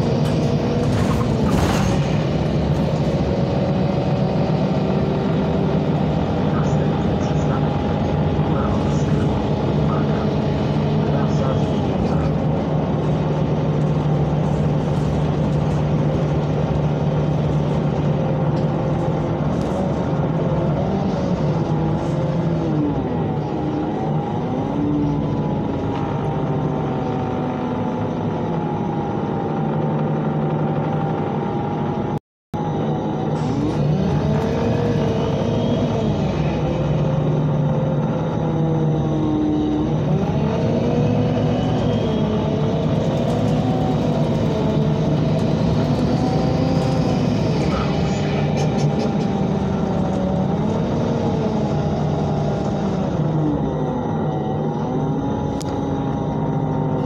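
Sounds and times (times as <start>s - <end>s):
bus engine running: 0.0s - 57.0s
drivetrain whining: 0.0s - 57.0s.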